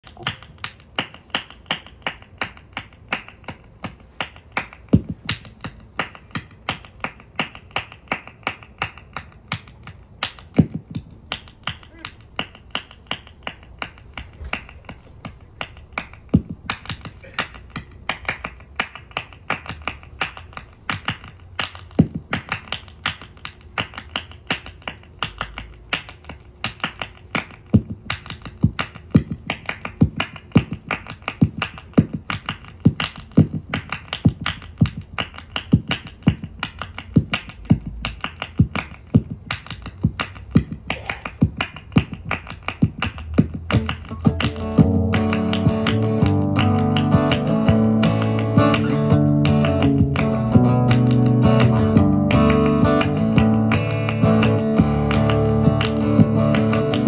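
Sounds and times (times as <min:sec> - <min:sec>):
finger snapping: 0:00.1 - 0:57.0.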